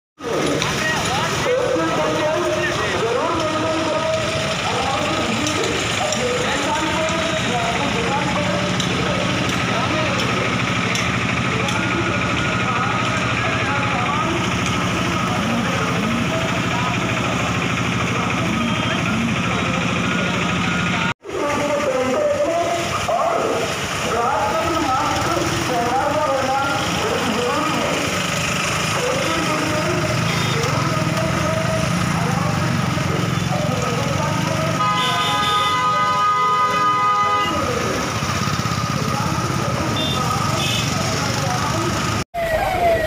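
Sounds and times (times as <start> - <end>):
wash of voices: 0.2 - 34.8
vehicle engines running: 0.2 - 43.0.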